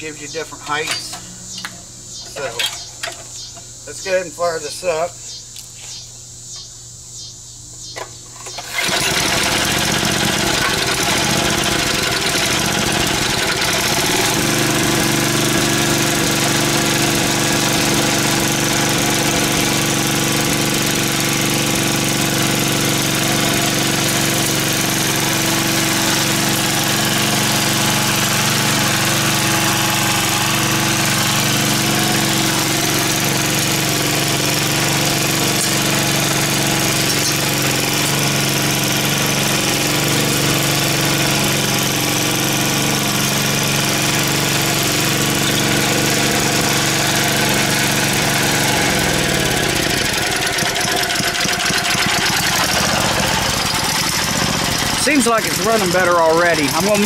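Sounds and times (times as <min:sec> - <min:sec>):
lawn edger engine running: 0:08.5 - 0:57.0.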